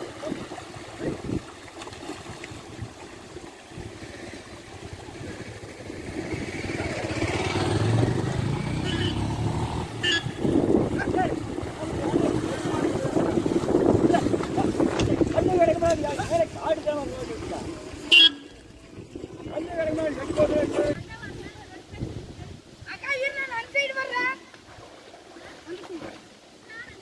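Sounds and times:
vehicle engine: 5.2s - 14.4s
voices: 6.3s - 24.6s.

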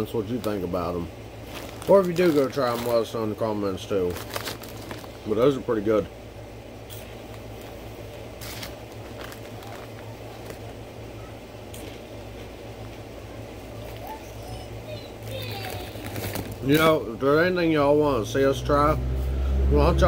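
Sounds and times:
low room hum: 0.0s - 20.0s
man chewing crunchy snack: 11.7s - 12.6s.

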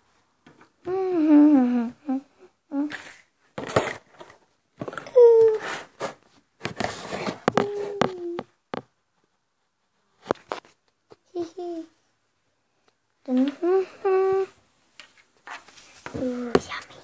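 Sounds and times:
person humming: 0.8s - 3.0s, 5.1s - 5.6s, 7.5s - 8.5s, 13.3s - 14.6s.

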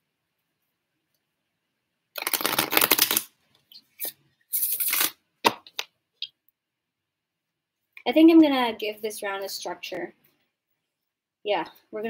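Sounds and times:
cards being shuffled: 2.2s - 3.3s, 4.0s - 5.9s.

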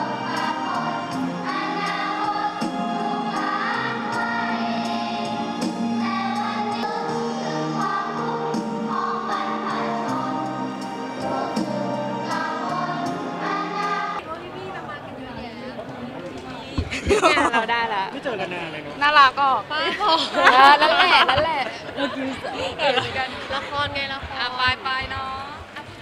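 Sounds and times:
choir singing with instruments: 0.0s - 14.2s
steady beat: 0.0s - 14.2s.

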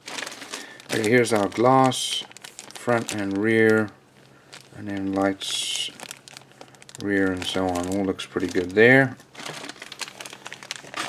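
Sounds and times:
plastic bags crinkling: 0.0s - 11.0s.

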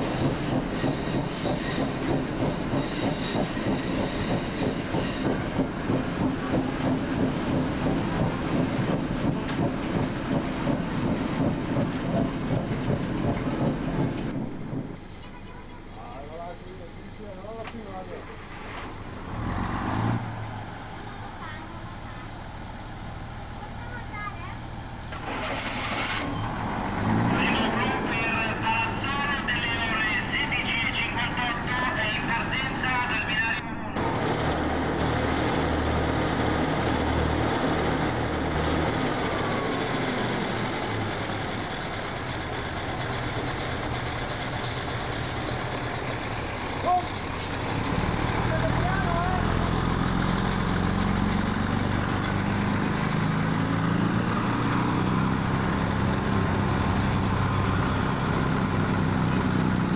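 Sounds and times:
railcar diesel engine running: 0.0s - 59.9s.

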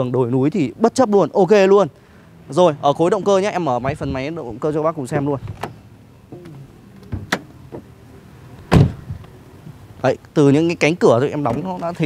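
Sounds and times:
car door shutting with a thud: 5.4s - 7.9s, 8.7s - 9.2s.

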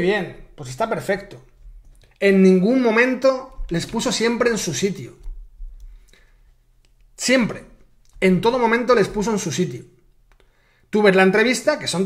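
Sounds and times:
man's voice: 2.2s - 5.3s, 7.2s - 9.9s.

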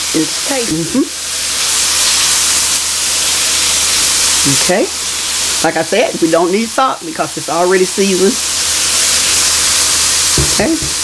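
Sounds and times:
meat sizzling in butter: 0.0s - 11.0s.

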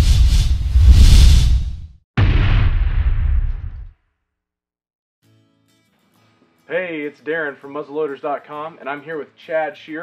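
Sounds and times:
swooshes: 0.0s - 1.9s
deep rumble: 0.1s - 3.9s.

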